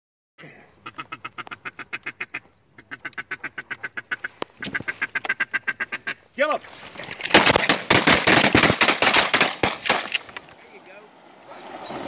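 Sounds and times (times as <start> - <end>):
duck call quacks: 0.8 - 6.2.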